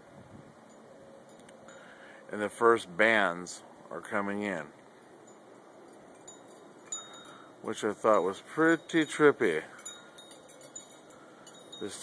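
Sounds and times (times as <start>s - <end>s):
wind chimes tinkling: 0.6s - 2.2s, 5.0s - 12.0s.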